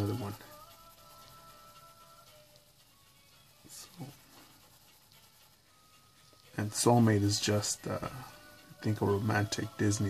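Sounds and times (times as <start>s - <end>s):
pencil scratching on paper: 0.0s - 8.1s
faint background music: 0.0s - 10.0s.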